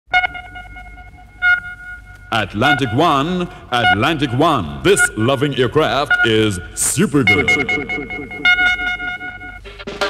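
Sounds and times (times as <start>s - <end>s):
sonar-like electronic pings: 0.1s - 9.8s.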